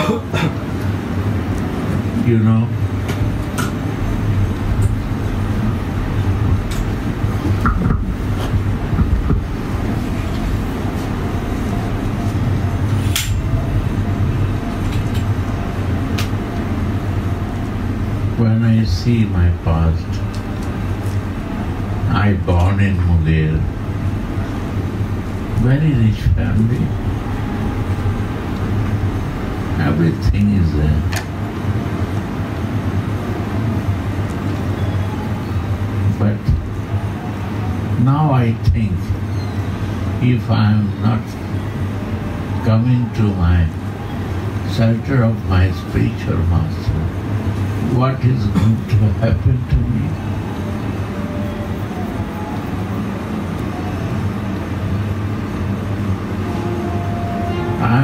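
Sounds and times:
low background rumble: 0.0 - 58.0.

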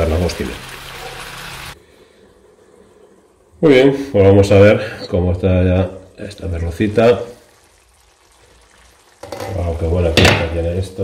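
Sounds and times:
sauce simmering in a frying pan: 0.0 - 1.8, 2.4 - 11.0.

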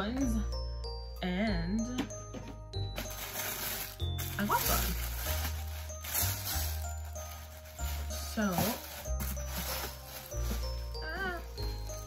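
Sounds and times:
tissue paper rustling: 3.0 - 12.0.

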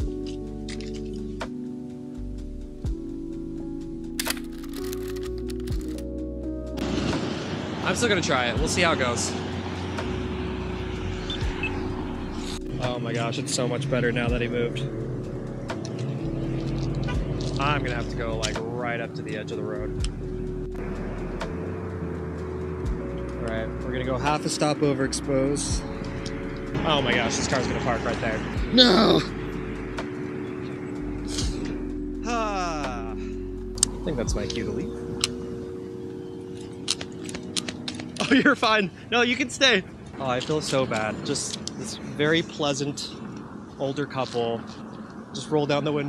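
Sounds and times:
car pulling into parking space: 0.0 - 32.2
road traffic rumble: 0.0 - 46.0
soft background music: 0.0 - 46.0.

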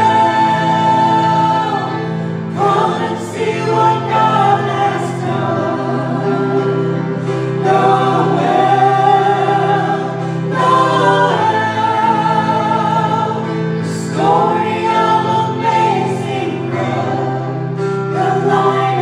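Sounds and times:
vocal group singing in harmony: 0.0 - 19.0.

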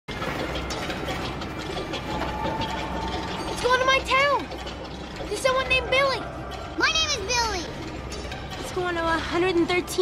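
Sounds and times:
machinery clicking and clattering: 0.1 - 10.0.

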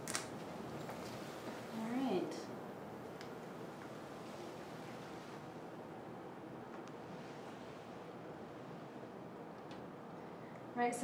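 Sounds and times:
faint room hiss: 0.0 - 11.0.

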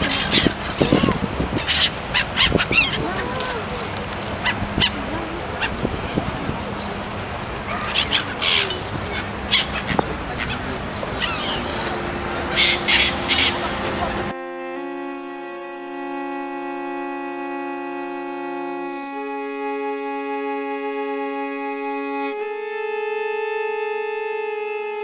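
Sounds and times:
gulls squawking: 0.0 - 14.3.

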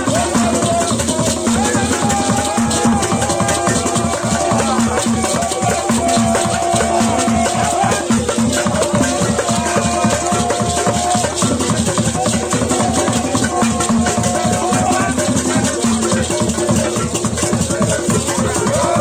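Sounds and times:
drums and rattles playing: 0.0 - 19.0.

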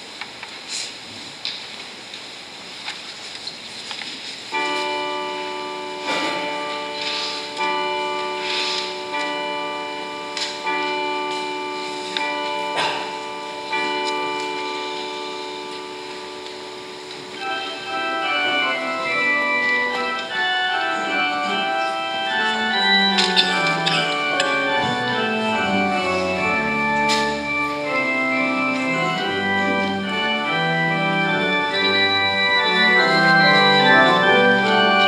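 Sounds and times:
church bell ringing: 4.5 - 35.0
organ playing: 4.5 - 35.0.

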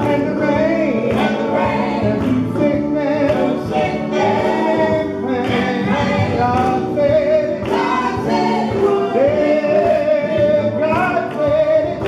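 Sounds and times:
gospel group singing in harmony: 0.0 - 12.0.

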